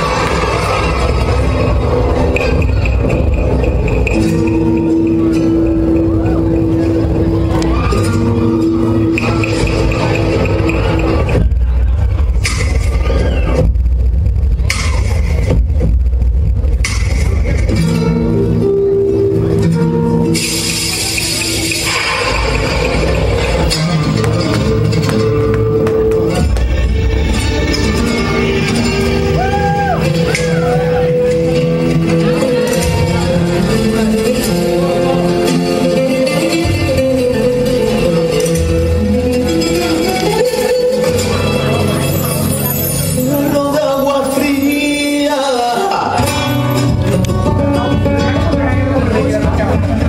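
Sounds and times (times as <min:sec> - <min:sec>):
dance music with heavy bass: 0:00.0 - 0:18.4
rumba music with guitar: 0:17.6 - 0:50.0.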